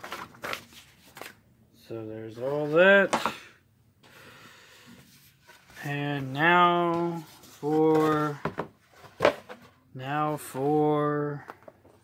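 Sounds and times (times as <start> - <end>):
paper rustling: 0.0 - 1.4, 5.0 - 9.8.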